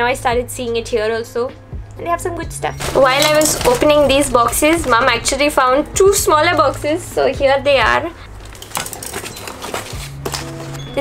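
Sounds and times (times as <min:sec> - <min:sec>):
cardboard box handled and opened: 0:08.4 - 0:10.9.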